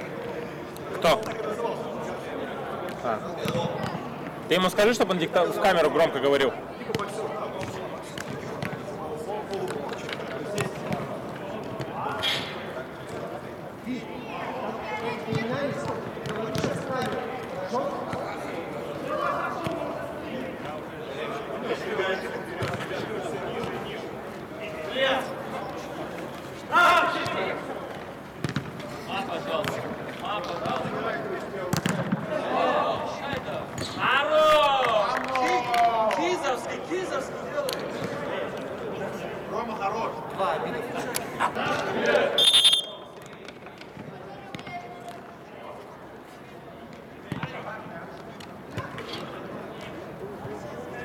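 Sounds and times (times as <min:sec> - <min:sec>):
players calling out: 0:41.5 - 0:43.2
footballers shouting: 0:41.6 - 0:43.1.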